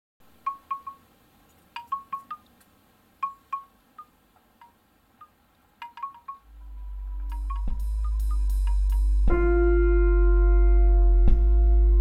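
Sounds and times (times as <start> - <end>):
wind chimes tinkling: 5.8 - 9.3.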